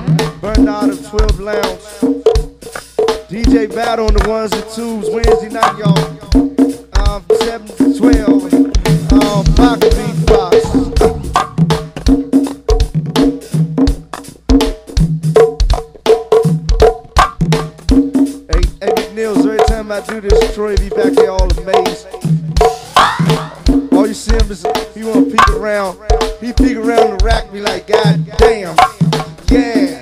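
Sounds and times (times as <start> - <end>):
drums and hand percussion groove: 0.0 - 30.0
sharp knocking accent: 3.3 - 12.8, 18.5 - 25.8.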